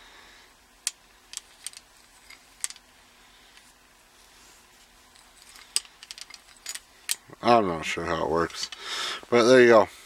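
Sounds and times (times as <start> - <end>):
metal ratchet clicking and rattling: 0.8 - 2.8, 5.2 - 7.2.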